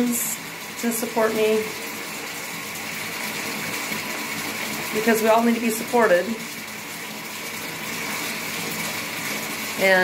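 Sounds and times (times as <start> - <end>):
tap running into bathtub: 0.0 - 10.0.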